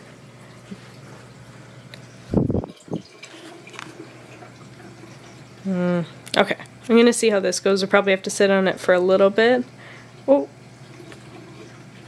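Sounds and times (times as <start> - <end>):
aquarium water running: 0.0 - 12.0
woman humming: 5.6 - 6.2.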